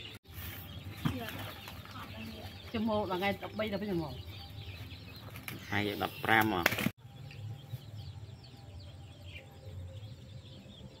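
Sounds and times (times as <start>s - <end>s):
high chirps of night animals: 0.0s - 11.0s.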